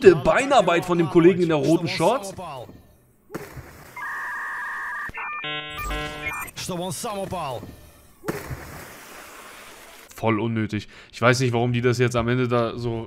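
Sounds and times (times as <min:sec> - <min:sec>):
voice: 0:00.0 - 0:02.8, 0:06.5 - 0:07.7, 0:10.1 - 0:13.0
two steady electronic tones: 0:04.0 - 0:06.5
stepped electronic notes: 0:05.4 - 0:06.5.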